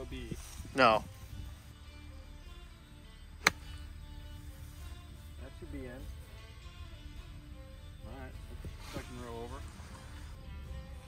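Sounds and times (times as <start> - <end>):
soft background music: 0.0 - 11.0
golf club striking ball: 3.4 - 4.0.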